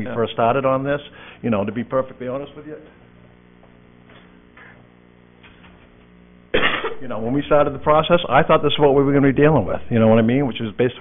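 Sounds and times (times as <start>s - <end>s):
man talking: 0.0s - 3.0s, 7.0s - 11.0s
low electrical hum: 0.0s - 11.0s
loud cough: 6.5s - 7.0s.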